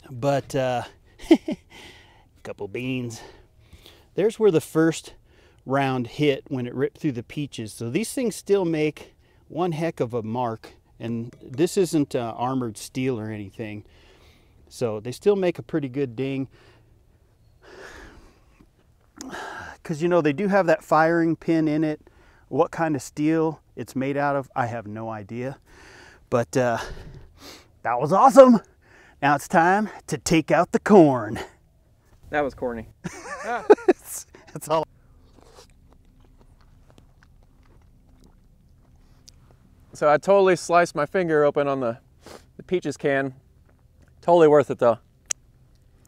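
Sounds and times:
man breathing softly: 1.7 - 2.4, 3.2 - 4.2, 5.2 - 5.6, 13.9 - 14.6, 17.6 - 18.6, 22.0 - 22.5, 25.6 - 26.3, 28.8 - 29.2
faint low rumble: 31.7 - 41.2.

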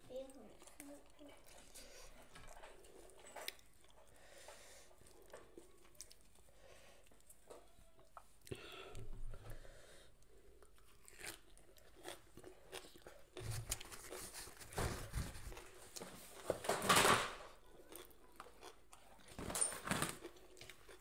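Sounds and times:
person chewing herb leaves: 4.9 - 7.4, 10.2 - 14.6, 17.8 - 19.3, 20.2 - 21.0.

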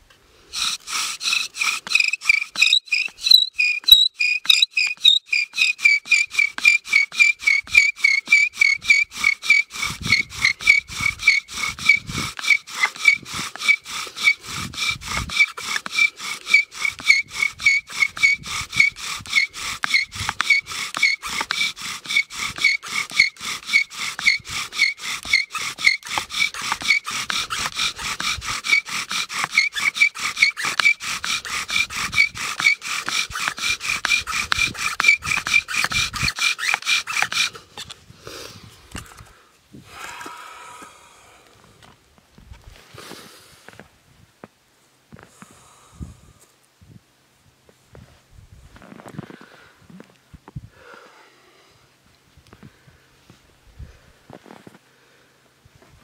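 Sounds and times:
bow drill spindle squeaking: 0.5 - 38.0.

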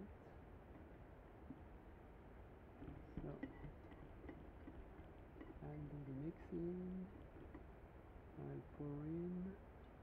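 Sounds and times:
faint low background noise: 0.0 - 10.0.

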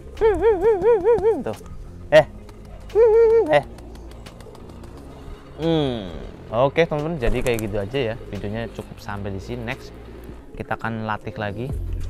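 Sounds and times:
man calling to pigeons: 0.0 - 3.8.

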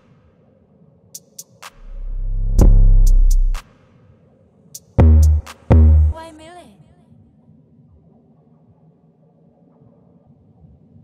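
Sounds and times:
faint low rumble: 1.8 - 3.6.

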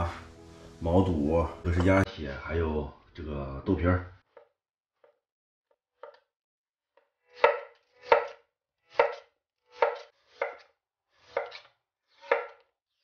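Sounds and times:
knife slicing on wooden board: 7.4 - 12.7.

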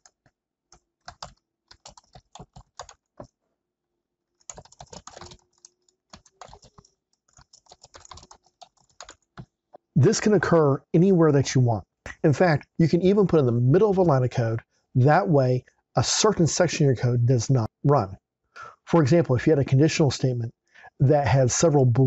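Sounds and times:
computer keyboard typing: 0.0 - 3.4, 4.4 - 9.5.

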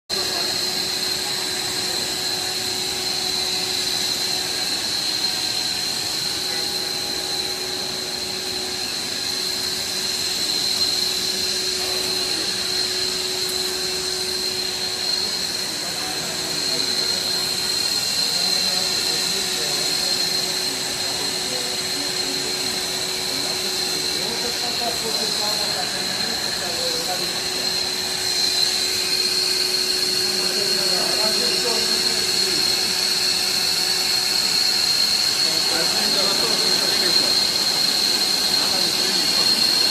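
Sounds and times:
high machine whine: 0.1 - 39.9
machine hum: 0.1 - 39.9.

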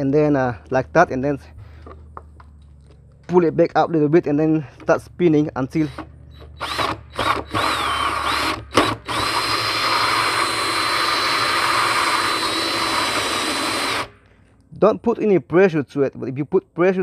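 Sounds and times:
cordless drill cutting plastic: 5.8 - 14.2.

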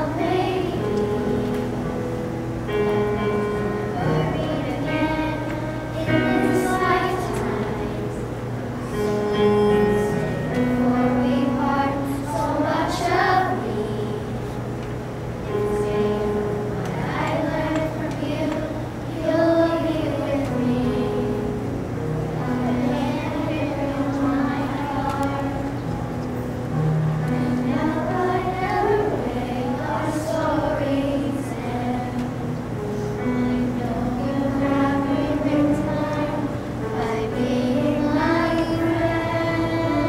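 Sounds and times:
children's choir singing: 0.0 - 40.0.

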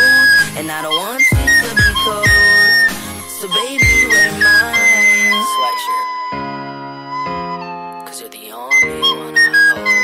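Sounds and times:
backing music: 0.0 - 10.0
recorder playing melody: 0.0 - 10.0.

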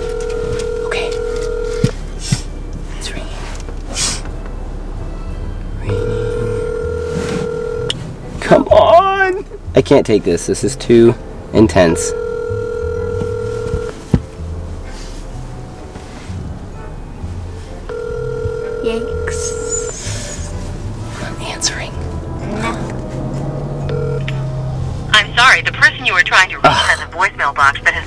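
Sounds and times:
recorded voicemail voice: 0.0 - 1.9, 5.8 - 7.9, 11.7 - 13.9, 17.9 - 20.1, 25.2 - 28.0
phone ringback tone: 0.0 - 2.0, 5.8 - 8.0, 11.8 - 14.0, 17.9 - 20.5, 23.8 - 24.5.

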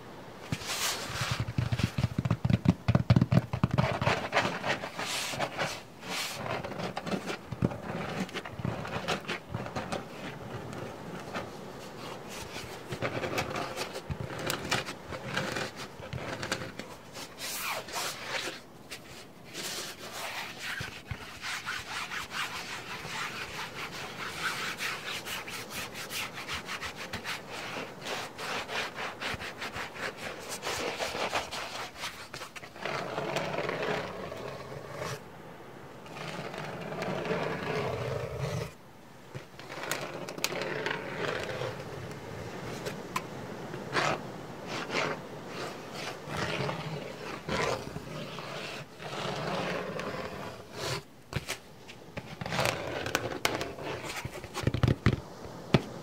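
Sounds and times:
slow rubbing strokes: 0.0 - 2.6, 3.6 - 35.3, 36.0 - 56.0
fast dense scratching: 0.4 - 35.2, 36.0 - 38.8, 39.4 - 56.0.

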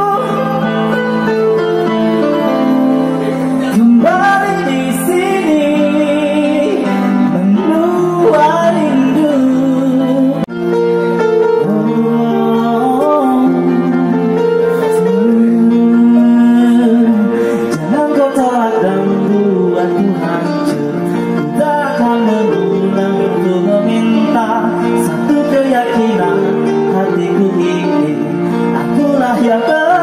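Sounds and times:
electronic keyboard chords: 0.0 - 30.0
man singing into a microphone: 0.0 - 30.0.

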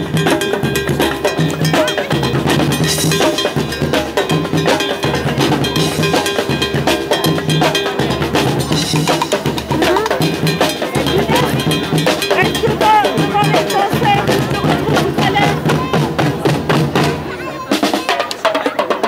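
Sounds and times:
bass drum beats: 0.0 - 19.0
drum troupe playing: 0.0 - 19.0.

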